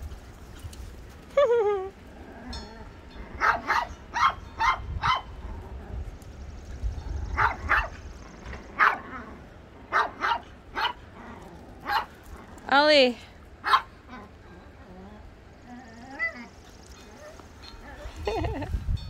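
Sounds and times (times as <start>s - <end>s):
small dogs yapping: 2.2s - 6.1s, 7.1s - 12.7s, 13.6s - 18.6s.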